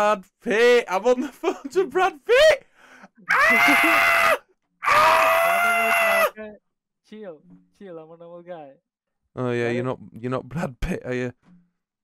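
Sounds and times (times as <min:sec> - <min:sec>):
man screaming: 0:03.3 - 0:06.4.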